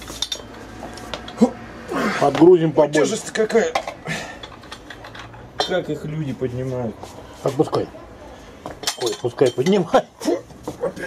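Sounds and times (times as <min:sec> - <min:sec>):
metallic clinks of weight plates: 0:08.8 - 0:09.8.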